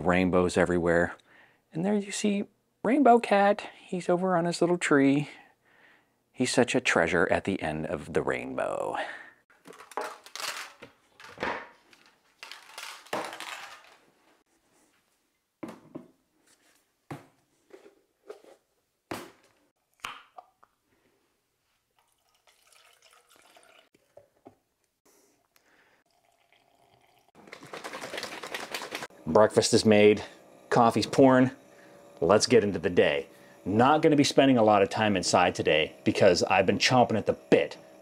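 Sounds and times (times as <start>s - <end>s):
household handling noises: 9.5s - 19.7s, 27.4s - 29.1s
plastic shaker bottle rattling: 11.9s - 14.0s, 27.4s - 29.1s.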